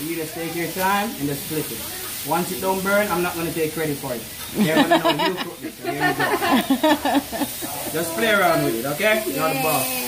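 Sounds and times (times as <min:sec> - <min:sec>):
food sizzling on griddle: 0:00.0 - 0:10.0
voices talking: 0:00.0 - 0:10.0.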